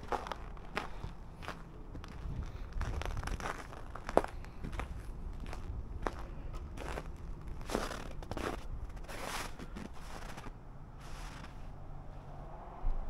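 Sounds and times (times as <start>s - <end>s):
footsteps on packed snow: 0.0s - 11.7s
low steady rumble: 0.0s - 13.0s.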